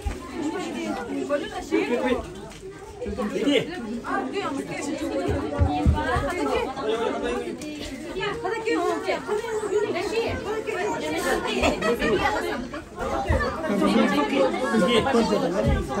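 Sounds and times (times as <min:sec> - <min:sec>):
voices chattering: 0:00.0 - 0:16.0.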